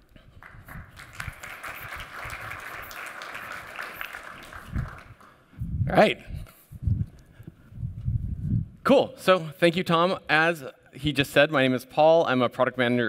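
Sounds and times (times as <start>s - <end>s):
audience applause: 0.4s - 5.5s.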